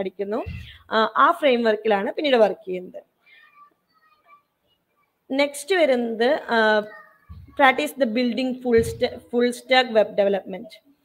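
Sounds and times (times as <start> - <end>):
faint high-pitched sounds: 3.3 - 5.3.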